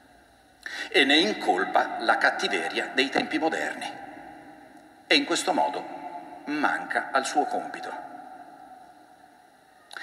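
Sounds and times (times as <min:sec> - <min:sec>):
thin steady hum: 0:00.0 - 0:10.0
quick intake of breath: 0:00.6 - 0:00.9
man preaching: 0:00.8 - 0:04.0, 0:05.1 - 0:08.1.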